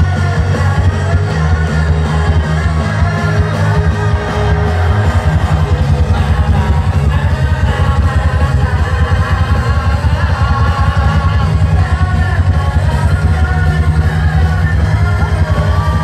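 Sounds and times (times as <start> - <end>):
live pop-rock band: 0.0 - 16.0
man singing into microphone: 0.0 - 16.0.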